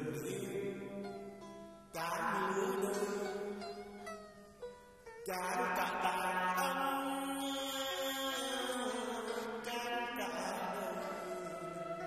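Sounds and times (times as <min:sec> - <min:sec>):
person chanting poetry: 0:05.3 - 0:12.0
instrumental accompaniment: 0:10.4 - 0:12.0.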